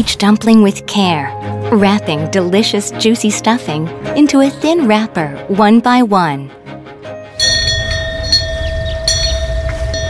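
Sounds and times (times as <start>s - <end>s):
low rumble: 7.4s - 10.0s
wind bell ringing: 7.4s - 10.0s.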